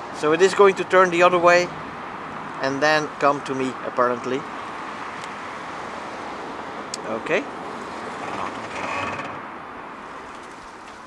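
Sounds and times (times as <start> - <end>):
steady outdoor hiss: 0.0 - 11.0.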